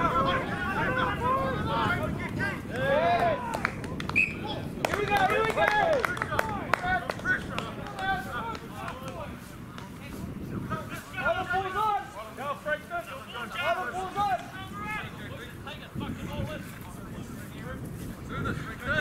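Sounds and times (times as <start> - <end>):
players shouting calls: 0.0 - 15.9.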